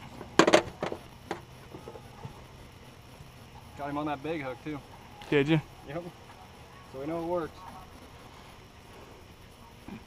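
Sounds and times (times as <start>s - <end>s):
objects clattering and knocking: 0.2s - 2.0s.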